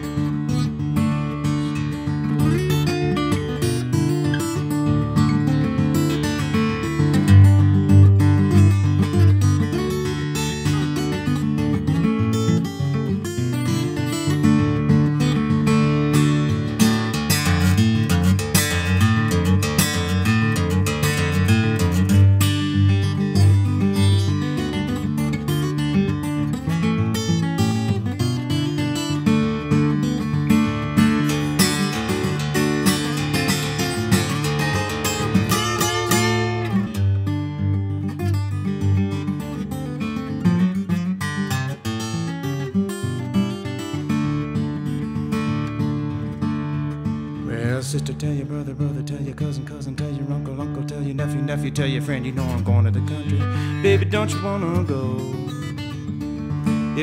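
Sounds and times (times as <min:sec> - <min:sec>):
acoustic blues guitar: 0:00.0 - 0:57.0.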